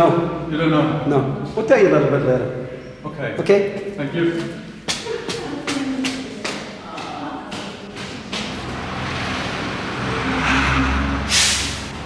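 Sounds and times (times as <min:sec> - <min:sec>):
vehicle engine rumble: 0:07.9 - 0:12.0
short loud hiss: 0:11.3 - 0:12.0.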